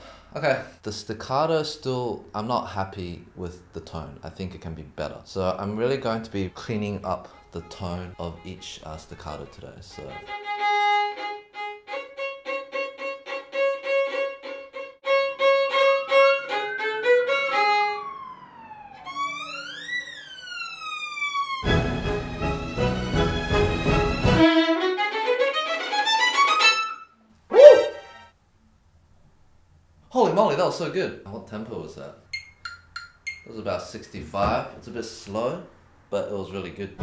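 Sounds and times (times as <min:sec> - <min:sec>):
brief loud sound: 0:27.5 - 0:28.2
violin pitch glides: 0:27.5 - 0:28.2.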